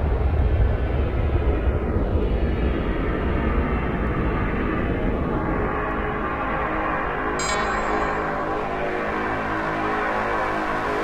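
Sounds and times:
swept filtered noise effect: 0:07.4 - 0:09.2.

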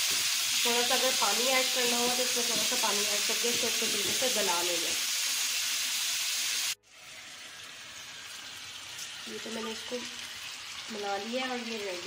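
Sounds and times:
chicken sizzling in oil: 0:00.0 - 0:12.0.

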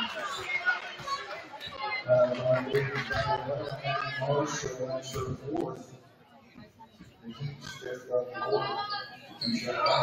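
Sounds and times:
overlapping voices and chatter: 0:00.0 - 0:10.0.

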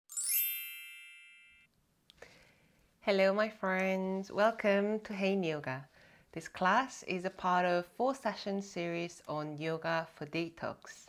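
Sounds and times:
bell-like chime run: 0:00.1 - 0:01.7.

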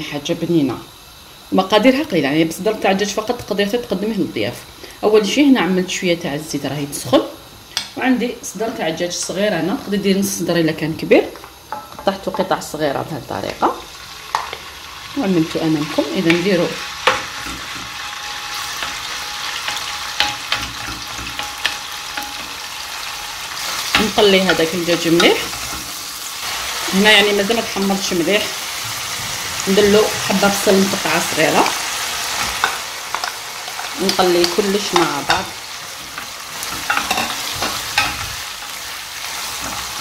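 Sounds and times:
chicken sizzling in hot oil: 0:00.0 - 0:40.0
wooden spoon scraping a pan: 0:32.0 - 0:40.0.

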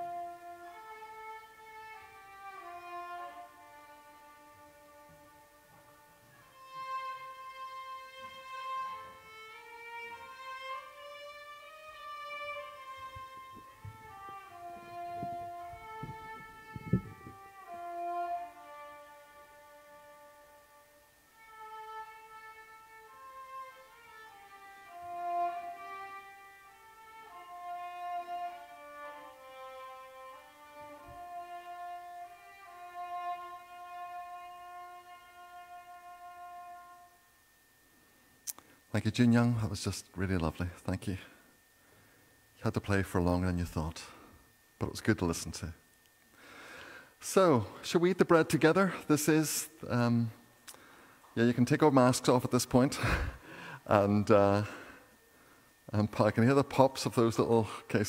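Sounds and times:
solo violin melody: 0:00.0 - 0:37.8.

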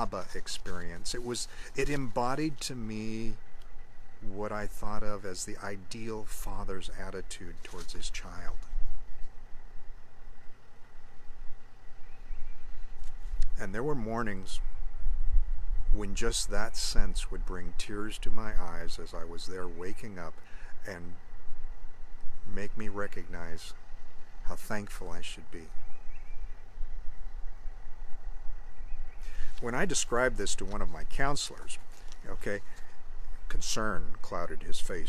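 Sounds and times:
low outdoor rumble: 0:00.0 - 0:35.0
faint bird chirp: 0:10.9 - 0:13.6, 0:22.5 - 0:27.8, 0:28.4 - 0:30.3.

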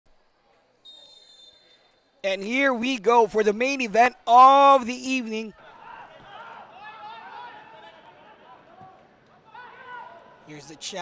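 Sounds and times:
people calling and shouting: 0:02.2 - 0:10.4.

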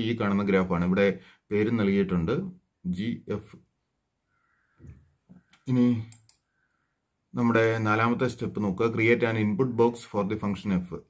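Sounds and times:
computer clicks: 0:05.4 - 0:06.5.

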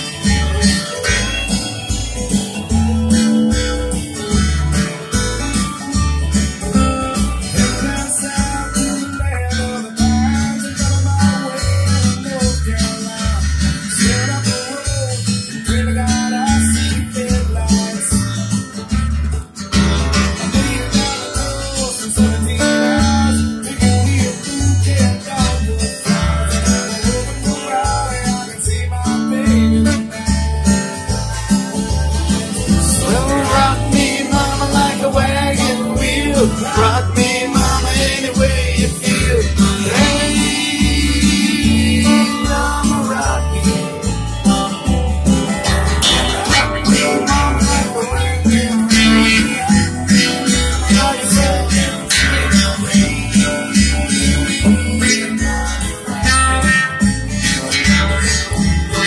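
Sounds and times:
low beat: 0:00.0 - 0:14.3, 0:15.2 - 0:59.0
acoustic guitar strumming: 0:00.0 - 0:59.0.

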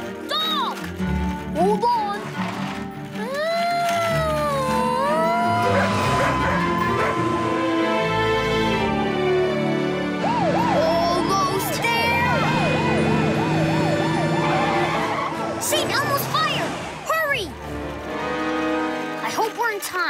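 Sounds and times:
background music: 0:00.0 - 0:20.0
fire engine siren wailing: 0:04.0 - 0:17.0.

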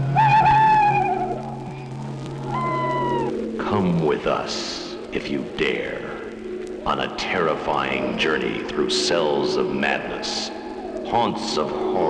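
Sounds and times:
eerie high wailing cries: 0:00.0 - 0:03.4
steady low drone: 0:00.0 - 0:12.0.

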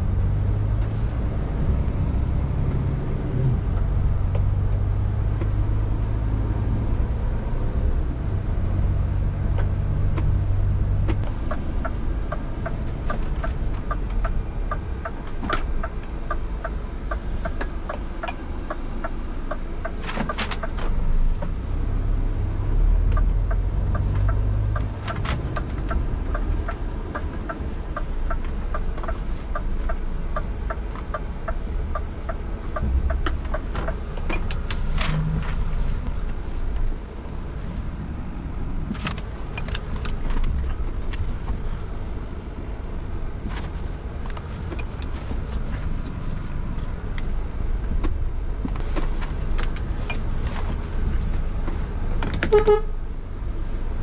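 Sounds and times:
truck engine rumbling: 0:00.0 - 0:54.0
turn signal ticking: 0:00.2 - 0:08.2, 0:08.8 - 0:36.9, 0:39.0 - 0:42.0, 0:44.0 - 0:54.0.

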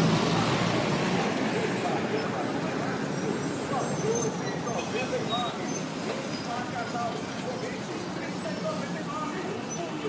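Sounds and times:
background voices talking: 0:00.0 - 0:10.0
road traffic hum: 0:00.0 - 0:10.0.

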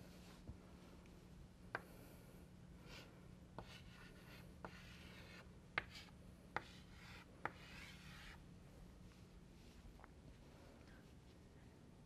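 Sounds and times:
chalk scratching: 0:02.8 - 0:08.4
chalk tapping on blackboard: 0:03.6 - 0:08.4.

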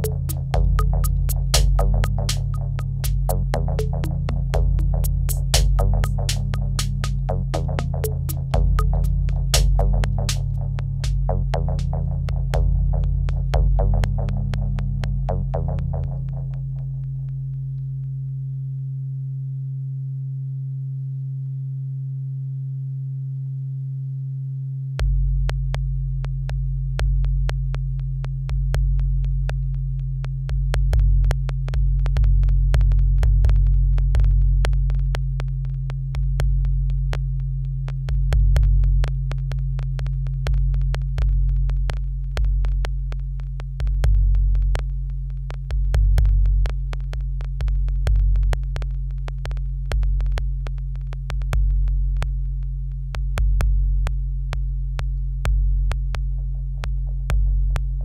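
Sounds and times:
deep synthesizer bass tones: 0:00.0 - 0:17.7, 0:25.0 - 0:58.0.

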